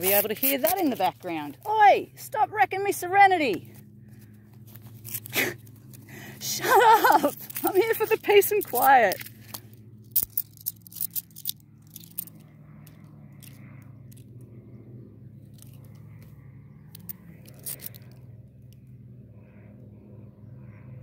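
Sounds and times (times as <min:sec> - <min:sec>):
coins clinking and scraping: 0:00.0 - 0:01.2, 0:04.7 - 0:05.6, 0:06.7 - 0:13.6, 0:17.0 - 0:18.2
low engine drone: 0:00.0 - 0:21.0.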